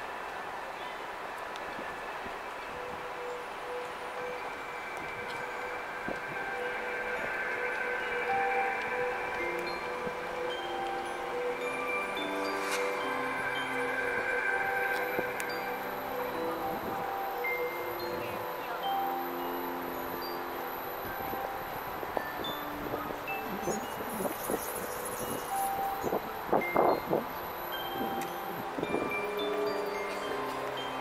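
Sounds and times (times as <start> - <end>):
crowd voices: 0.0 - 31.0
twinkling chime tones: 2.7 - 31.0.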